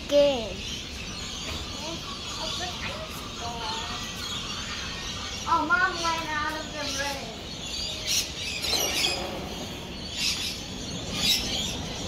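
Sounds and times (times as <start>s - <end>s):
birds harsh high-pitched calls: 0.0s - 12.0s.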